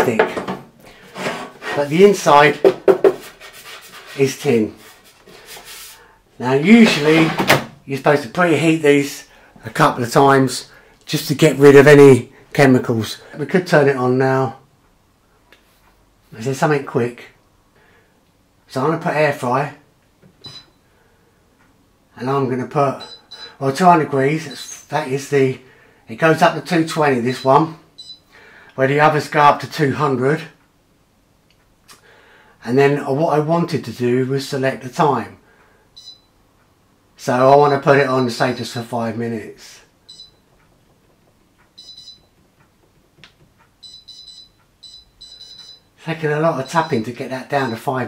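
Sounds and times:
air fryer control panel beeping: 23.0 - 23.6, 27.4 - 28.2, 40.1 - 40.5, 41.6 - 42.4, 43.8 - 46.0, 46.6 - 47.9.

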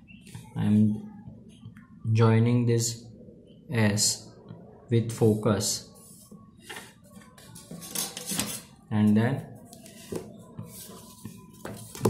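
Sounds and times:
plastic instruments clattering and scraping: 7.5 - 8.7.

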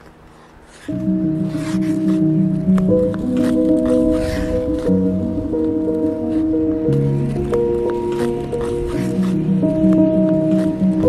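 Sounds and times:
slow sustained background music: 0.0 - 11.0.

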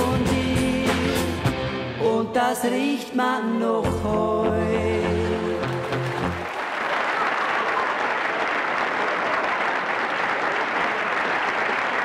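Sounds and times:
backing music: 0.0 - 6.5
audience applauding: 5.5 - 12.0.

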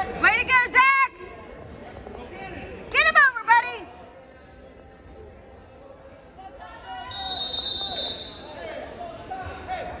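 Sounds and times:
referee's whistle blast: 7.1 - 8.6.

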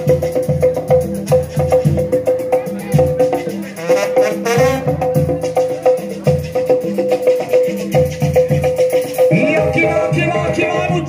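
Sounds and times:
brass band music: 3.4 - 5.8.

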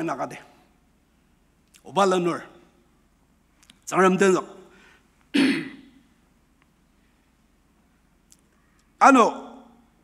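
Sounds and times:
man coughing: 5.3 - 6.0.

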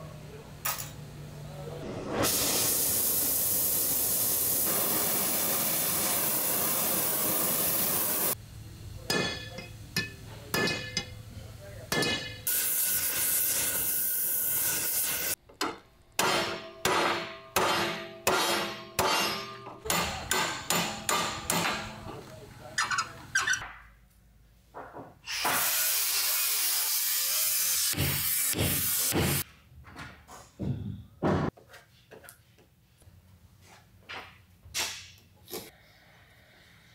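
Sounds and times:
steady hissing noise: 1.3 - 12.4
hammer striking metal: 9.1 - 11.2, 11.9 - 12.7, 15.6 - 22.2.

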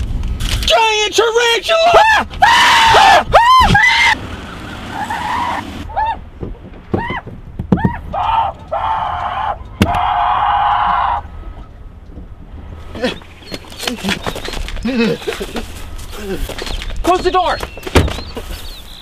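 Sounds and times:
man screaming in panic: 0.7 - 4.2.

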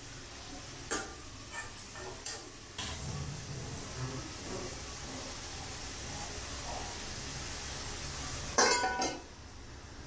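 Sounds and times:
faint sizzle in pan: 0.0 - 10.0
steel lid clinking on pan: 8.6 - 9.2.

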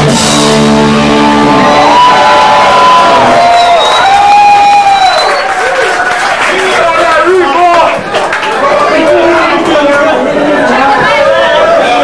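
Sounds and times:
hardcore punk band playing: 0.0 - 3.5.

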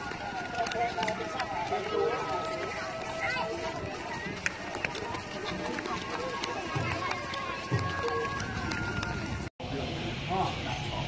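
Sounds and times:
crowd footsteps shuffling on pavement: 0.0 - 9.5
voices chattering: 0.0 - 11.0.

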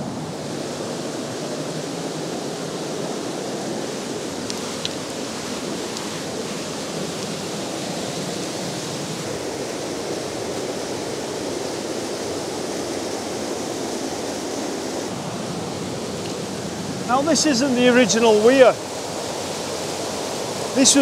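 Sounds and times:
water rushing over weir: 0.0 - 21.0.

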